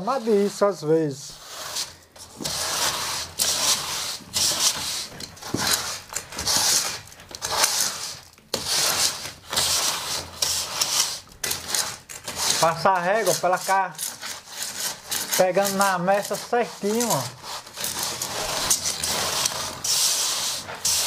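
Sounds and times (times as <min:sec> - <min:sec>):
straightedge scraping cement render: 0:00.0 - 0:21.0.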